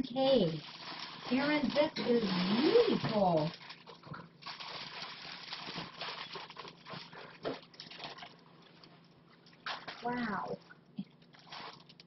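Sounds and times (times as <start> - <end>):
plastic bag rustling and crinkling: 0.2 - 9.0, 11.3 - 12.0.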